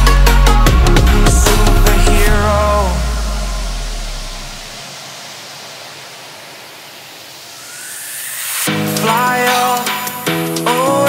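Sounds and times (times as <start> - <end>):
deep bass tone: 0.0 - 4.8
steady hiss-like rush: 0.0 - 11.0
faint rising whoosh: 1.5 - 10.2.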